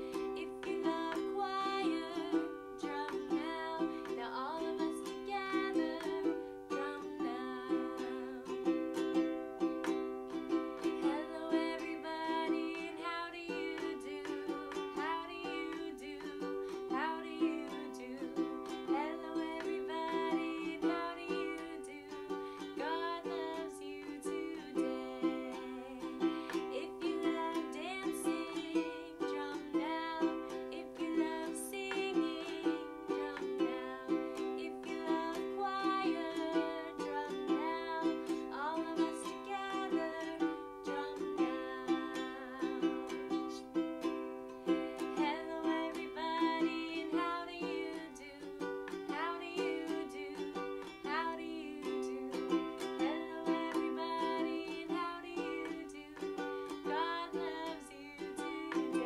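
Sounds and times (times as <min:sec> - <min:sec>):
ukulele strumming chords: 0:00.0 - 0:59.0
woman singing: 0:00.0 - 0:59.0.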